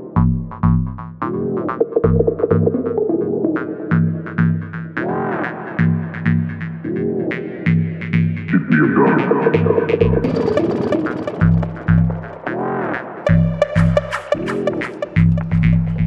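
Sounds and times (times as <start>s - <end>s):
techno music: 8.2s - 16.0s.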